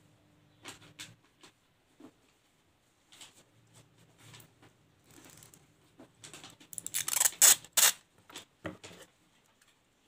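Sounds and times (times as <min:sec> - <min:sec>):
plastic tape crinkling: 0:06.2 - 0:08.1.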